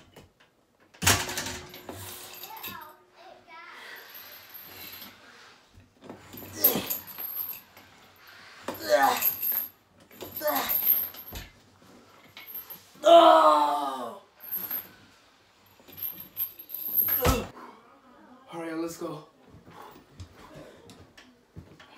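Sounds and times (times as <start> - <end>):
man grunting with effort: 6.5 - 7.1, 8.8 - 9.4, 10.4 - 10.9, 13.0 - 14.2, 17.2 - 17.5.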